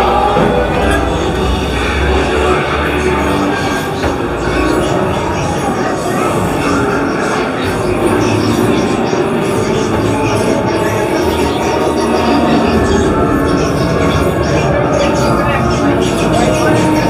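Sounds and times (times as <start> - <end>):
piped soundtrack with voices: 0.0 - 17.0.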